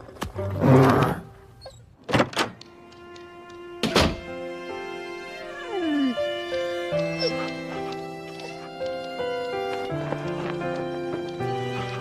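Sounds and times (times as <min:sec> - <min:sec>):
slow music with held notes: 0:02.6 - 0:12.0.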